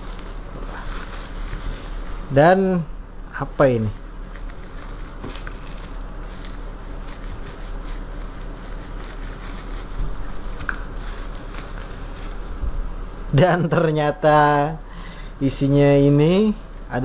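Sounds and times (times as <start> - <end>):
small crackles: 0.0 - 2.6, 3.3 - 12.6
plastic wrapping crinkling: 0.0 - 13.4
steady low hum: 0.0 - 17.0.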